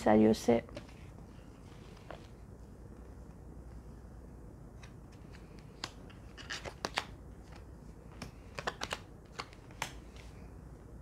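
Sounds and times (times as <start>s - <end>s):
cards clicking and tapping on table: 5.5s - 10.0s.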